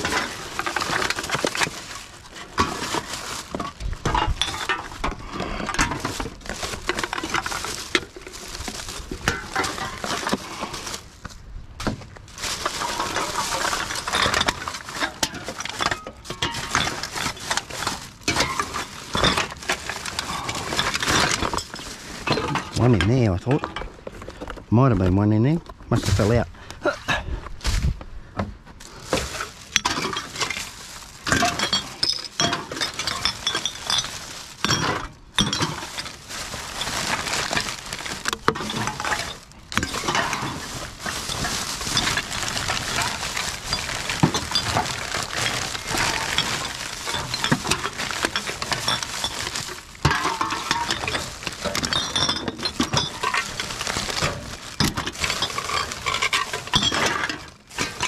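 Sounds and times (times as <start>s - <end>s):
cans and bottles clinking: 0.0s - 11.1s, 12.2s - 24.6s, 28.8s - 58.0s
plastic bag rustling: 0.0s - 26.6s, 28.8s - 58.0s.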